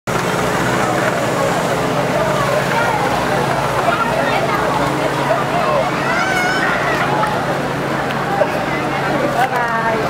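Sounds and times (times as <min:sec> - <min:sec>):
crowd chattering: 0:00.1 - 0:10.0
engine humming: 0:00.1 - 0:10.0.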